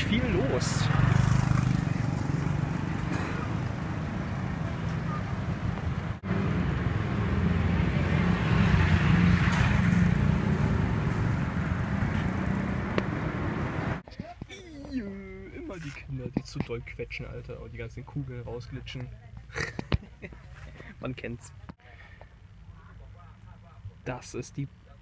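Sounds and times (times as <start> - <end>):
cars passing: 0.0 - 14.1
motorbikes passing: 0.0 - 14.1.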